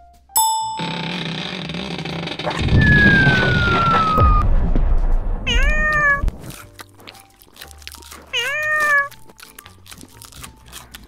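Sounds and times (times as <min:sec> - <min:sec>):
bell-like ding: 0:00.4 - 0:01.1
music with falling whistle: 0:02.6 - 0:04.6
cat meowing: 0:05.4 - 0:06.5, 0:08.3 - 0:09.2.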